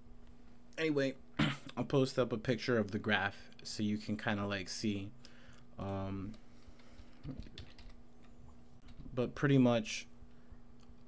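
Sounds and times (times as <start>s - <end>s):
faint steady hum: 0.0s - 11.0s
computer keyboard clicks: 7.2s - 8.0s.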